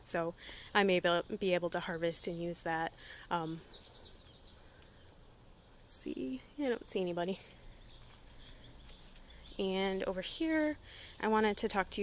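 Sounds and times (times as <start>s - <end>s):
bird chirps: 1.2s - 12.0s.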